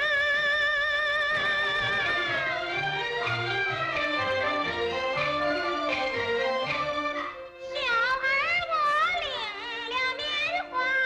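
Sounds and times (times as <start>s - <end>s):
bowed fiddle ensemble: 1.2s - 8.3s.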